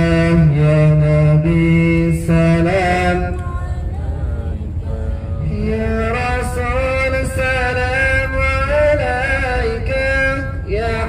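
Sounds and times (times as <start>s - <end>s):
low rumble of moving coach: 0.0s - 11.0s
man singing devotional song: 0.0s - 11.0s.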